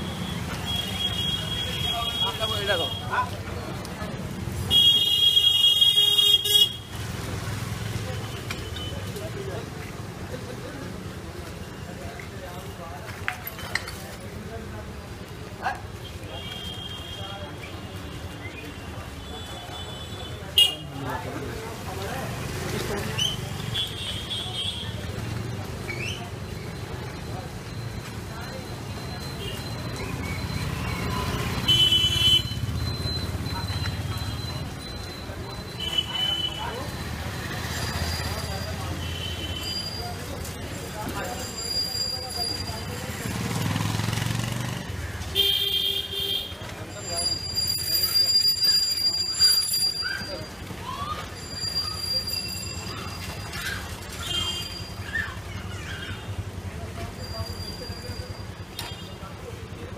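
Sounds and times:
car horn: 4.7s - 6.8s, 31.7s - 32.6s
vehicle engine passing: 43.0s - 45.0s.

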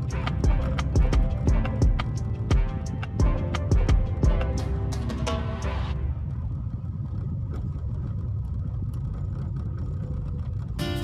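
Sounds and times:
music: 0.0s - 6.2s, 10.8s - 11.0s
car engine and tyres rumbling: 0.0s - 11.0s.

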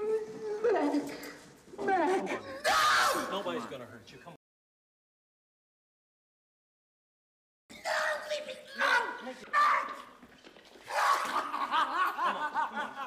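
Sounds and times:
men talking: 3.2s - 4.4s.

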